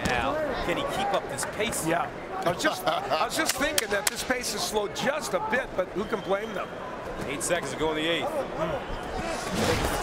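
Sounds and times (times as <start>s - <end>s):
arena noise: 0.0s - 10.0s.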